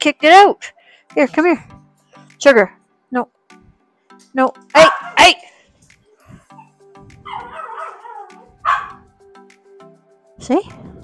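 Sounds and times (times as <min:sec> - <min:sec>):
soft background music: 0:00.0 - 0:11.0
dog barking: 0:04.8 - 0:05.4, 0:06.6 - 0:09.1
dog grumbling: 0:06.6 - 0:08.9.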